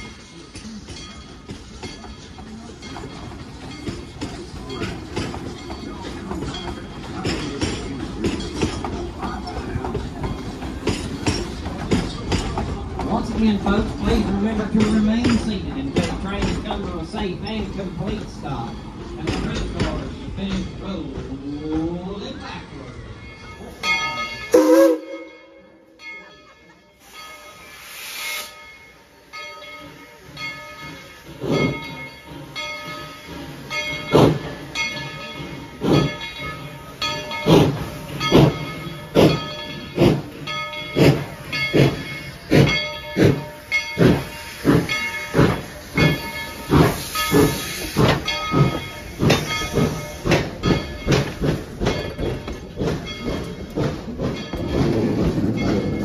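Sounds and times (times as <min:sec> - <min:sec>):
steam locomotive exhaust chuffs: 0:26.4 - 0:56.0
steam hissing: 0:27.0 - 0:56.0.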